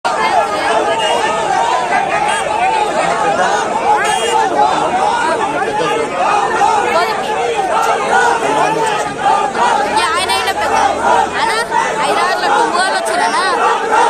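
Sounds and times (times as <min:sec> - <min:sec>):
crowd of men shouting: 0:00.0 - 0:14.0.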